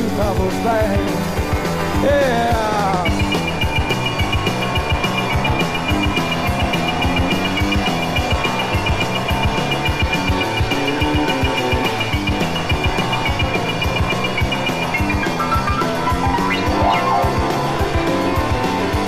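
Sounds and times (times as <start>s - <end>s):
fast drum beat: 0.0s - 19.0s
rock band playing instrumental: 0.0s - 19.0s.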